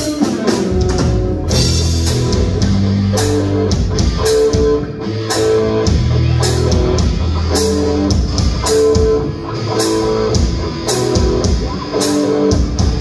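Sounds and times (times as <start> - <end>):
live rock band playing: 0.0 - 13.0.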